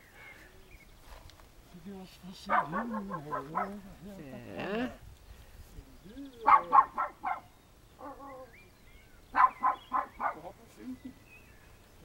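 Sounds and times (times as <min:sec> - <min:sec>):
dog barking: 0:02.5 - 0:03.9, 0:06.4 - 0:08.5, 0:09.3 - 0:10.5.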